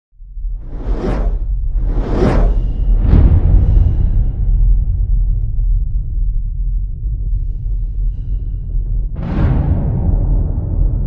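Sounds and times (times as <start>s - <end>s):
deep rumble: 0.2s - 11.0s
whoosh: 0.4s - 5.3s.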